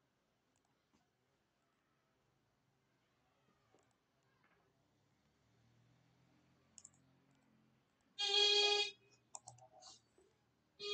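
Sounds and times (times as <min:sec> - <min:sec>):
computer mouse clicks: 0:06.8 - 0:08.1, 0:09.1 - 0:10.0.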